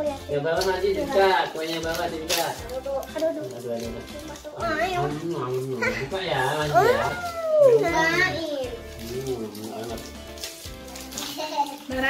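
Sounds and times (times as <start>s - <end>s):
background music: 0.0s - 12.0s
children talking: 6.7s - 8.9s.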